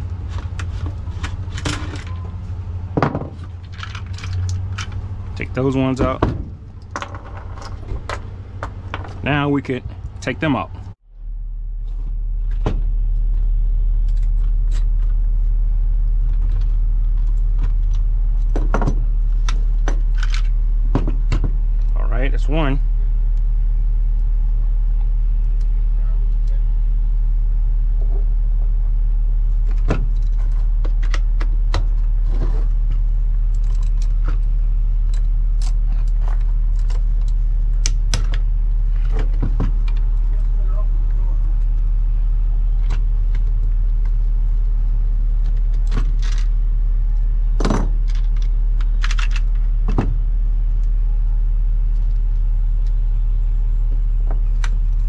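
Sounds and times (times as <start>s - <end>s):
steady low rumble: 0.0s - 55.0s
metal parts clinking: 3.5s - 5.0s.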